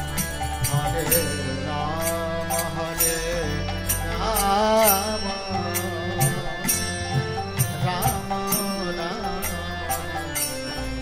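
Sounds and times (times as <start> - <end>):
percussion beat: 0.0 - 11.0
sustained instrumental accompaniment: 0.0 - 11.0.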